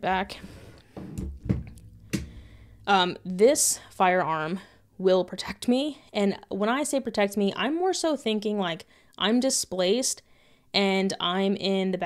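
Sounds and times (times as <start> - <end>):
dull thud: 1.0 - 2.6.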